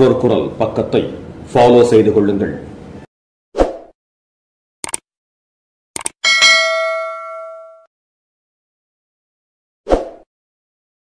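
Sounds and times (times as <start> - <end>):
quick clicks: 4.8 - 5.1, 6.0 - 6.2
bright bell ding: 6.2 - 7.9.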